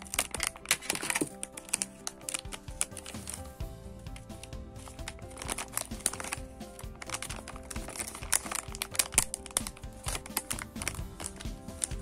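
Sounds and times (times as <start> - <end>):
plastic wrapper crinkling: 0.0 - 3.5, 4.2 - 12.0
background music: 0.0 - 12.0.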